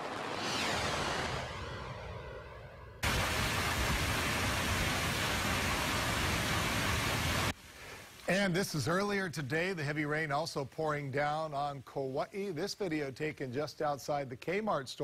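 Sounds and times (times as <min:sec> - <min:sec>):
whoosh transition effect: 0:00.0 - 0:03.2
heavy rain pouring: 0:03.0 - 0:08.0.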